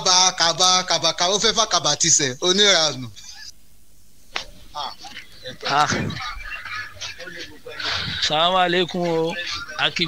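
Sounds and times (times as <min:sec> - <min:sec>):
man's broken speech: 0:04.7 - 0:10.0.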